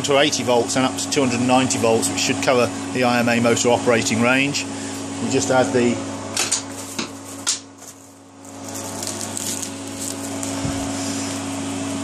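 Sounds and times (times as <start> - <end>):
electronics humming with cooling fans: 0.0 - 12.0.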